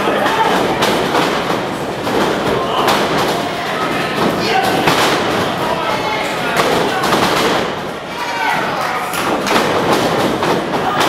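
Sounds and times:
loud hall din: 0.0 - 11.0
bodies thudding on ring canvas: 0.4 - 5.8
voices shouting: 2.3 - 9.8, 10.6 - 11.0.

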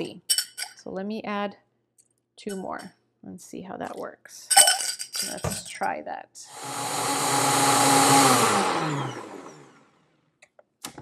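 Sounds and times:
blender running and spinning down: 6.5 - 10.0.

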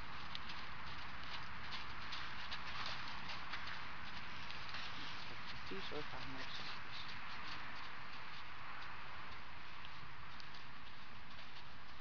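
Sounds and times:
hoofbeats on sand: 0.0 - 12.0.

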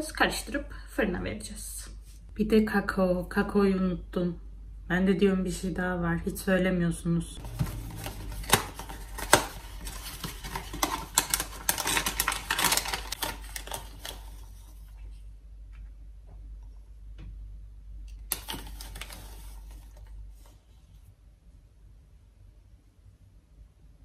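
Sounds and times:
cardboard box opening: 7.4 - 14.4
paper bag crinkling: 7.4 - 15.0, 18.3 - 20.5.

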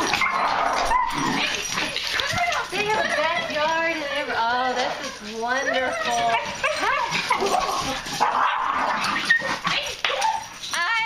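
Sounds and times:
dogs whimpering and yipping: 0.0 - 10.7.

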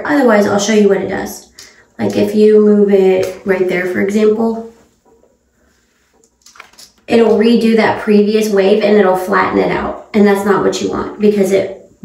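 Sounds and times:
hair iron clicks and rustles: 6.1 - 7.1.

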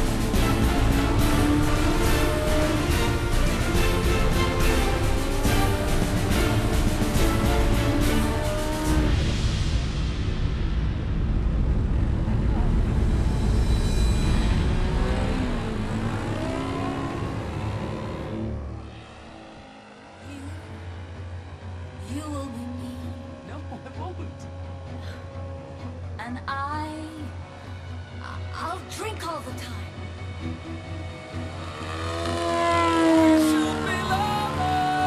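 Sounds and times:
music with singing voice: 33.4 - 35.0.

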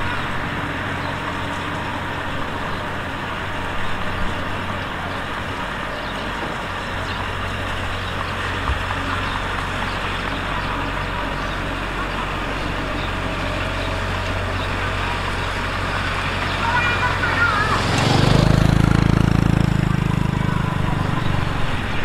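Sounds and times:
bulldozer diesel engine running: 0.0 - 22.0
motorcycle engine rumble: 0.0 - 22.0.

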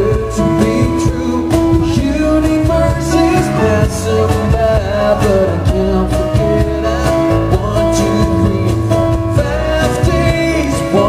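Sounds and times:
acoustic guitar: 0.0 - 11.0
man singing long notes: 0.0 - 11.0.

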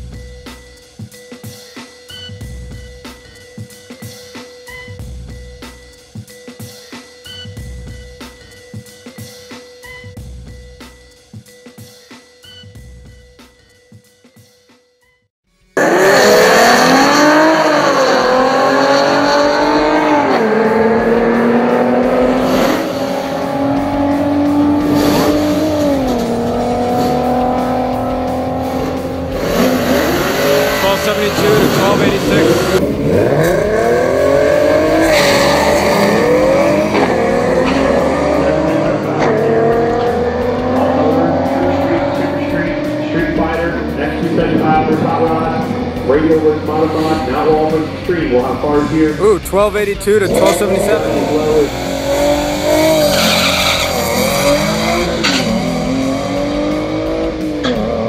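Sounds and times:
car engine at full throttle: 15.8 - 58.0.

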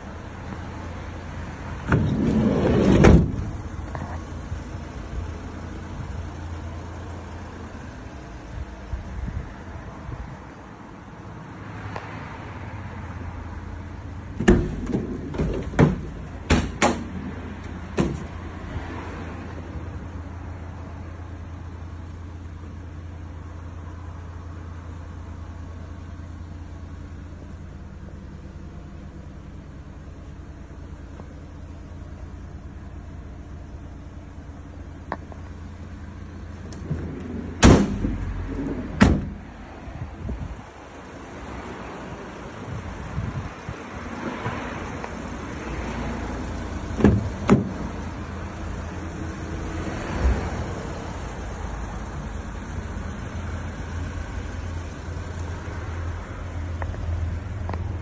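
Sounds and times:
steady low rumble: 0.0 - 11.5, 12.9 - 58.0
low rumble: 34.6 - 41.2.

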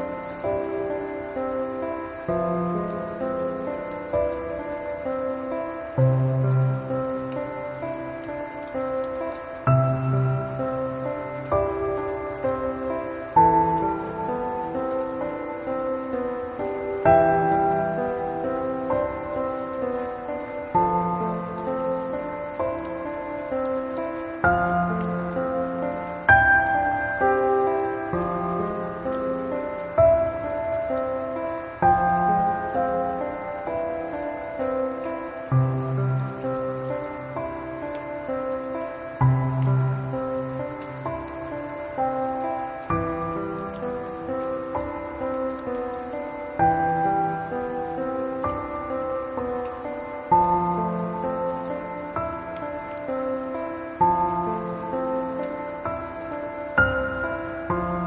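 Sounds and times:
slow solo piano music: 0.0 - 58.0
steady rain: 0.0 - 58.0.

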